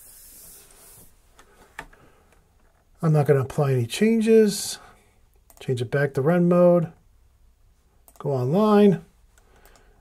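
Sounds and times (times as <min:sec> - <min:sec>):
faint hiss: 0:00.0 - 0:02.3.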